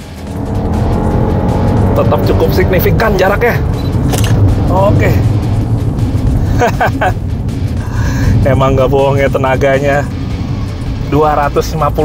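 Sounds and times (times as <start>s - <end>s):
background music: 0.0s - 12.0s
car driving low rumble: 0.0s - 12.0s.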